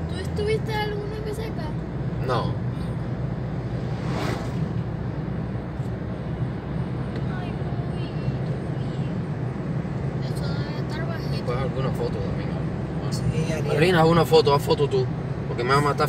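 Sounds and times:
truck passing rush: 0.0s - 7.8s
car cabin road and engine drone: 0.0s - 16.0s.

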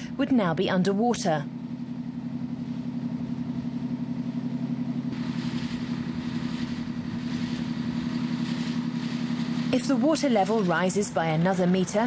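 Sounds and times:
boat engine running: 0.0s - 12.0s
rushing hiss: 5.1s - 11.0s.

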